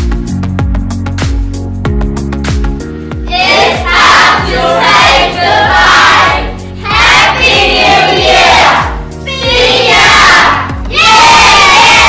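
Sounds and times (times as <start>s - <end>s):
background music: 0.0s - 12.0s
group shouting in unison: 3.3s - 12.0s.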